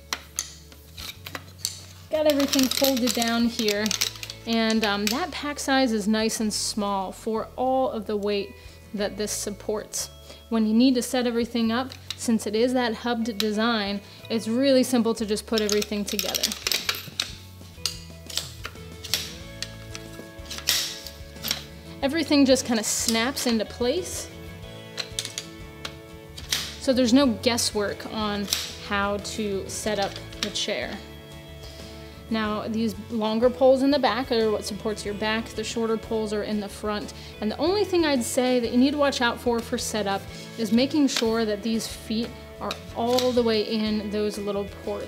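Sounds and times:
poles clicking and knocking together: 0:00.0 - 0:05.6, 0:11.2 - 0:31.0, 0:38.0 - 0:45.0
background music: 0:00.0 - 0:45.0.

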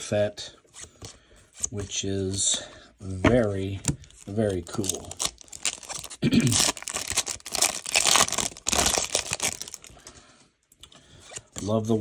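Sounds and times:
foil wrapper crinkling: 0:04.1 - 0:10.1.

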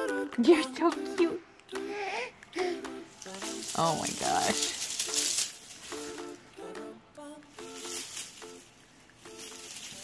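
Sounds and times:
light plucked background music: 0:00.0 - 0:10.0
ribbon bow crinkling rustle: 0:03.1 - 0:06.4, 0:07.6 - 0:10.0.

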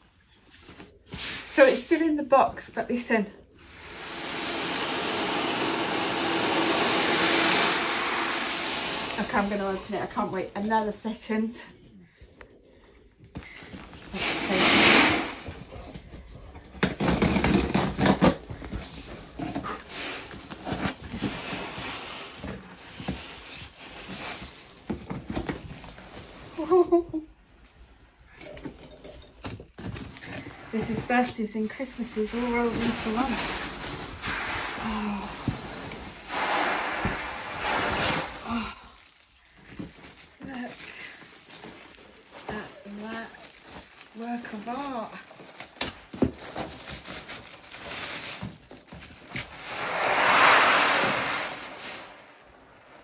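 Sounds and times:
sea drum beads rolling: 0:03.6 - 0:10.2.

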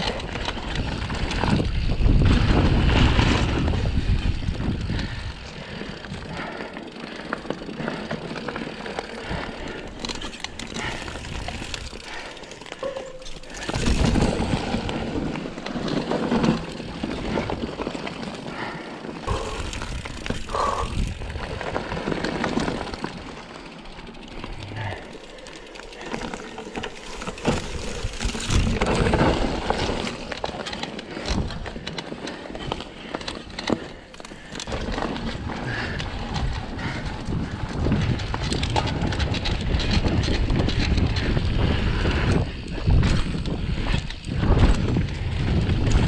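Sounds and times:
bike rattling over bumps: 0:00.0 - 0:46.0
bike tyres rolling on dirt: 0:00.0 - 0:46.0
wind on microphone: 0:00.7 - 0:05.5, 0:19.3 - 0:22.0, 0:35.4 - 0:46.0.

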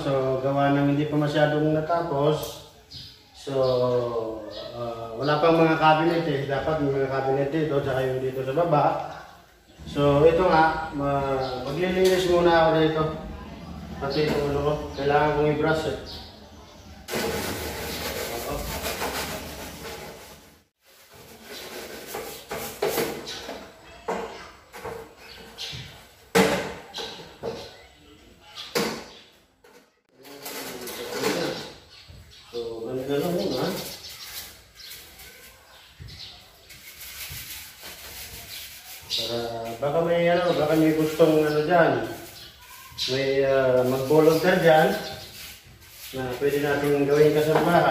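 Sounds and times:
rubbing and scrubbing counter: 0:17.1 - 0:23.2, 0:36.6 - 0:47.9.

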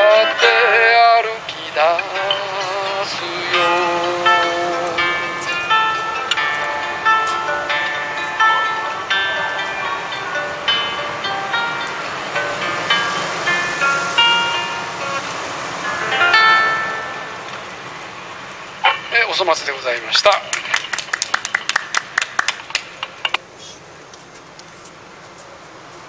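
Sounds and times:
acoustic guitar picking: 0:00.0 - 0:19.3.

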